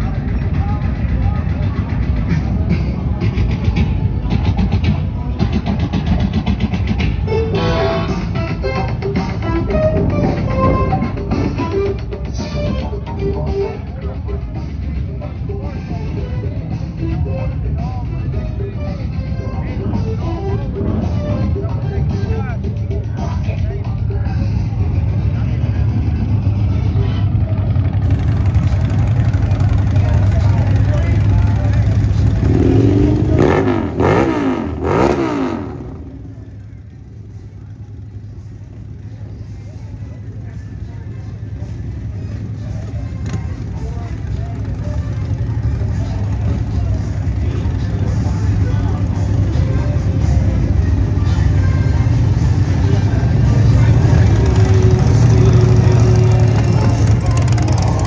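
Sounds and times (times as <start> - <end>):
crowd chatter: 0.0 - 58.0
motorcycle engines rumbling: 0.0 - 58.0
motorcycle revving: 24.4 - 58.0.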